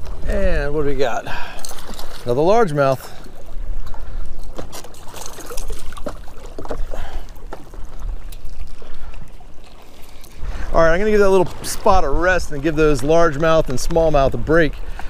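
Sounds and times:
water lapping against kayak hull: 0.0s - 15.0s.

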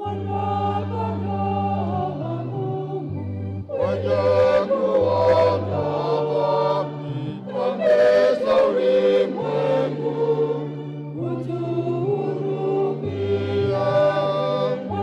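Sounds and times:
church choir singing a hymn: 0.0s - 15.0s.

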